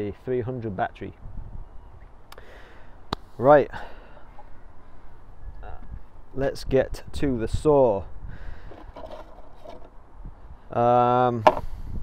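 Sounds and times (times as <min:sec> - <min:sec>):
low outdoor background: 0:00.0 - 0:12.0
faint scraping: 0:08.6 - 0:10.0.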